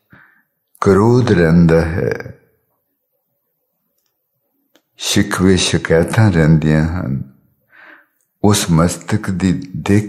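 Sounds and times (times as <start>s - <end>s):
man speaking: 0.8s - 2.5s, 5.0s - 7.4s, 8.4s - 10.0s.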